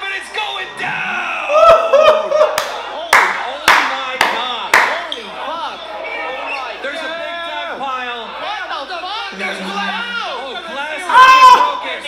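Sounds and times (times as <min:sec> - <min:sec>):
crowd noise: 0:00.0 - 0:12.0
sharp hand claps: 0:02.5 - 0:05.0
people shouting excitedly: 0:11.0 - 0:12.0.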